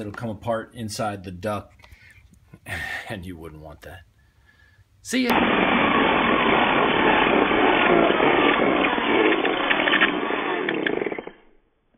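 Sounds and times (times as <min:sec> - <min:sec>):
electric drill running: 0:05.3 - 0:11.5
drill clicks: 0:05.4 - 0:11.4.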